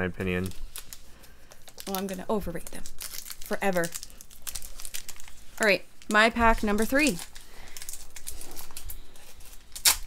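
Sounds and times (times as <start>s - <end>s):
foil wrapper crinkling: 0.1s - 10.0s
foil pack ripping open: 0.3s - 10.0s.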